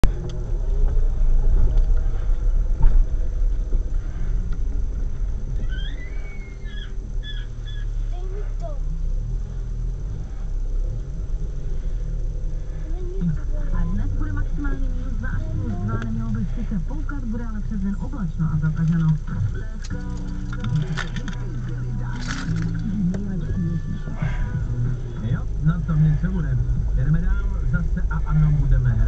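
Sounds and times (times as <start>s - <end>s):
car engine running: 0.0s - 29.0s.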